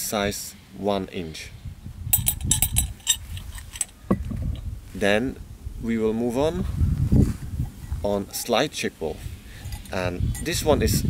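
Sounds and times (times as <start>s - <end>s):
wind rumble on microphone: 1.4s - 11.0s.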